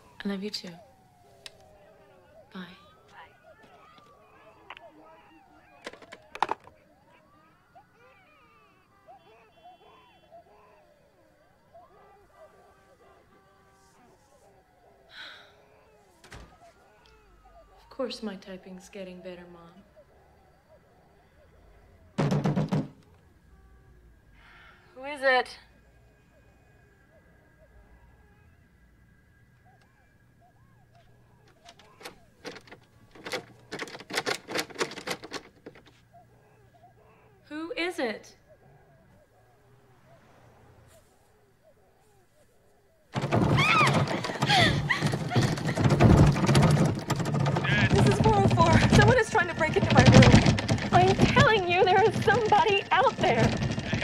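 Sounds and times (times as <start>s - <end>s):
telephone handset hung up: 5.8s - 6.7s.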